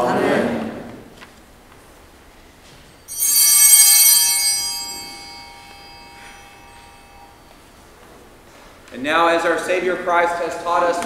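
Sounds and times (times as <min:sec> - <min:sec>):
altar bells ringing: 0:02.8 - 0:08.8.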